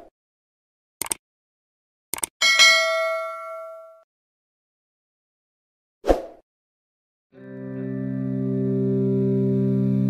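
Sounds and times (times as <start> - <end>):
notification bell ding: 2.4 - 4.0.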